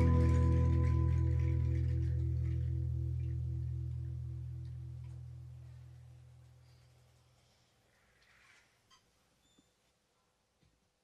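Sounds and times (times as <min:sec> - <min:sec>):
live band chord ringing out: 0:00.0 - 0:05.8.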